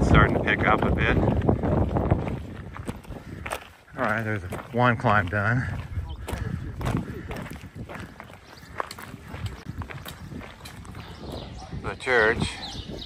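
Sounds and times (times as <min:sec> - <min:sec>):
footsteps on gravel: 0:00.0 - 0:11.8
wind rumbling on microphone: 0:00.0 - 0:13.0.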